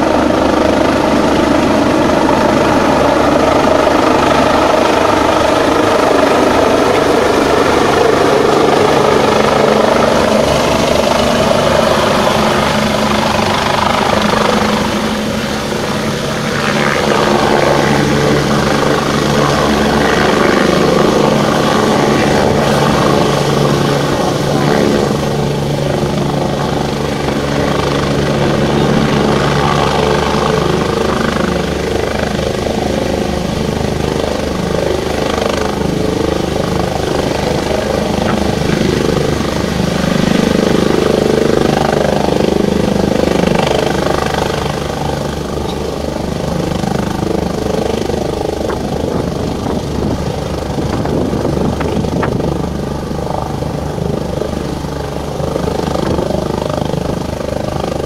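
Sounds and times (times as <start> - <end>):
helicopter rotor chop: 0.0 - 58.0
turbine whine: 0.0 - 58.0.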